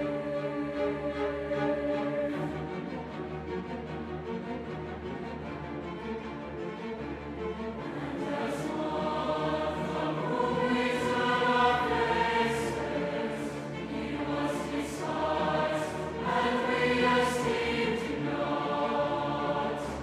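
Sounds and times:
large mixed choir singing: 0.0s - 4.3s, 6.9s - 20.0s
string orchestra: 0.0s - 20.0s.

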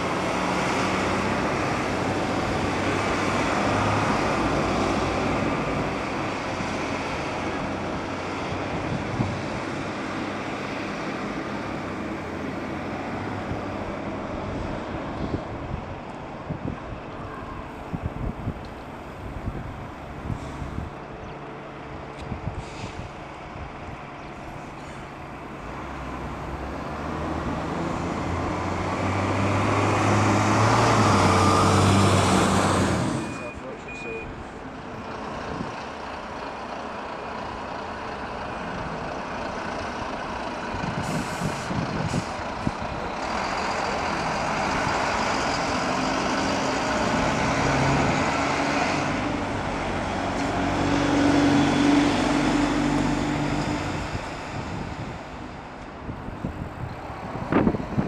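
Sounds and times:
diesel bus engine: 0.0s - 58.0s
brief air hisses: 22.6s - 23.0s, 41.0s - 42.4s.

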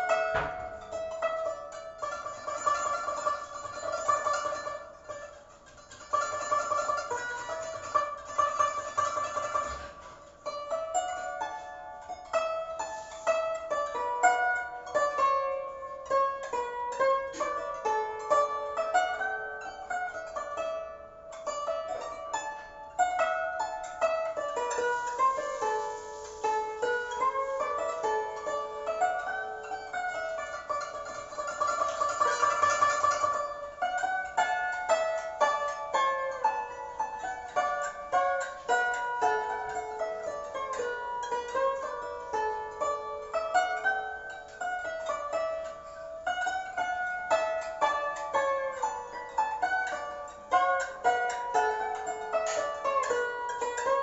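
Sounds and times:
plucked zither solo: 0.0s - 54.0s.

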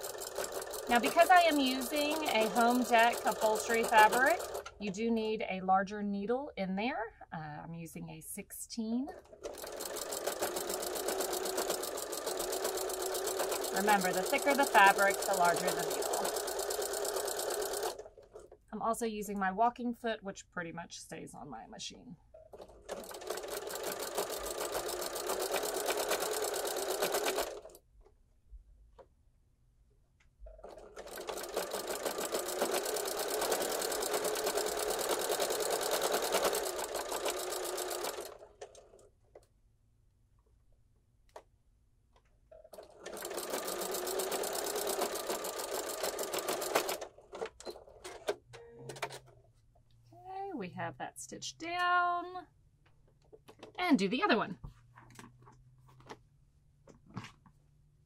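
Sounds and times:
sewing machine stitching: 0.0s - 5.1s, 9.1s - 18.6s, 22.3s - 27.8s, 30.5s - 39.1s, 42.5s - 49.3s.

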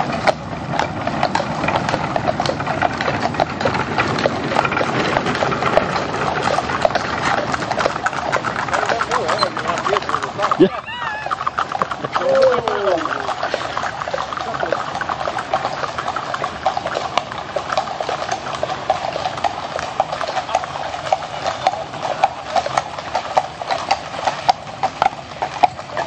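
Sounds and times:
horse hooves clip-clopping on road: 0.0s - 26.0s.

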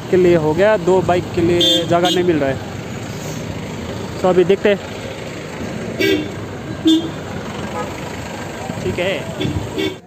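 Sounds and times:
street traffic din: 0.0s - 10.0s
car horn toots: 1.6s - 2.4s, 6.0s - 8.0s, 9.3s - 10.0s.

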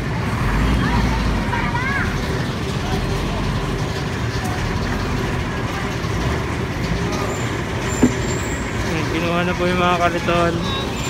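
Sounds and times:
street traffic rumble: 0.0s - 11.0s
sharp knock: 8.0s - 8.3s.

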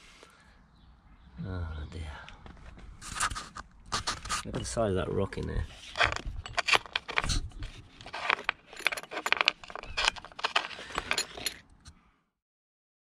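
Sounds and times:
plastic and metal parts rattling: 3.0s - 11.9s.

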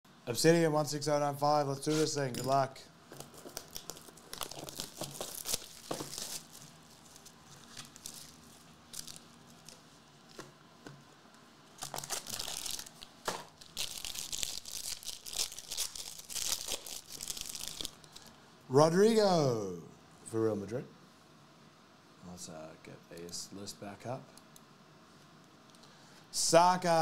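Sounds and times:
wrapper crinkling and tearing: 3.2s - 9.9s, 11.8s - 18.3s.

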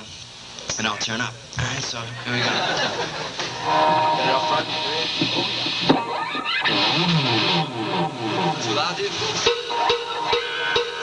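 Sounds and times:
electric guitar notes: 3.5s - 11.0s.

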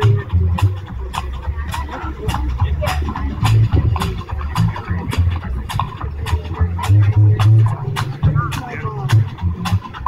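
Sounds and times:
bass line: 0.0s - 10.0s
bluegrass band playing: 0.0s - 10.0s.

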